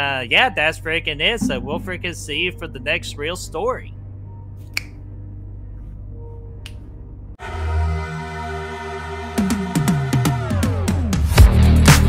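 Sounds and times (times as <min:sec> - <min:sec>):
finger snap: 0:04.6 - 0:05.0, 0:06.6 - 0:06.9.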